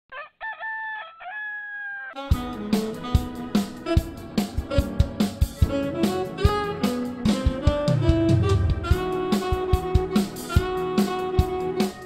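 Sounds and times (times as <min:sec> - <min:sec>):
rooster crowing: 0:00.1 - 0:02.3.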